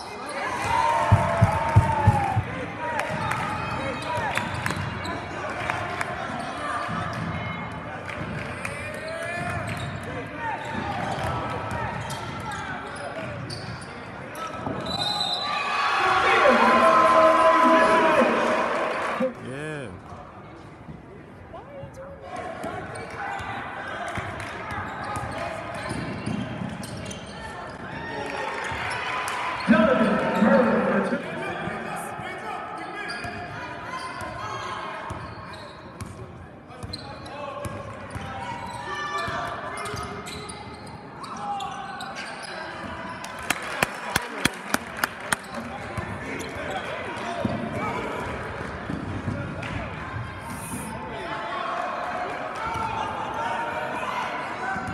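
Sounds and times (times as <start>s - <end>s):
crowd chatter: 1.1s - 29.0s, 29.6s - 35.2s, 42.2s - 54.9s
loud nearby voice: 16.1s - 20.0s.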